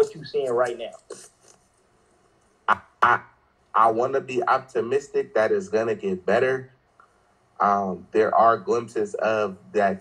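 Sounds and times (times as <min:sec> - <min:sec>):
man talking: 0:00.0 - 0:01.4, 0:02.7 - 0:06.8, 0:07.6 - 0:10.0.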